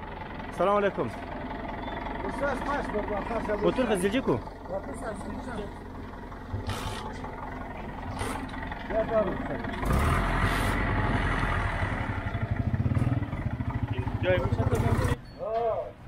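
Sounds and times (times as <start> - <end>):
vehicle engine chugging: 0.0 - 15.4.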